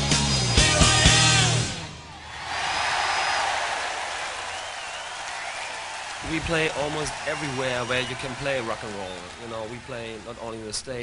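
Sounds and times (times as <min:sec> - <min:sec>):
audience applauding and cheering: 0:02.1 - 0:11.0
shrill whistles: 0:02.2 - 0:09.4.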